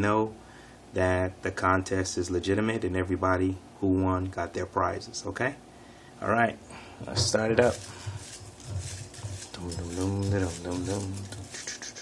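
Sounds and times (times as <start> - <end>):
paper slips rustling in glass bowl: 7.2 - 12.0.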